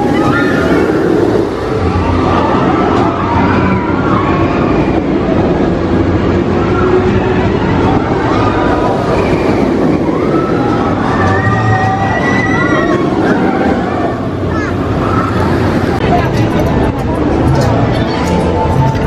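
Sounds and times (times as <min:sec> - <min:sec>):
roller coaster train on steel track: 0:00.0 - 0:19.0
voices: 0:00.0 - 0:19.0.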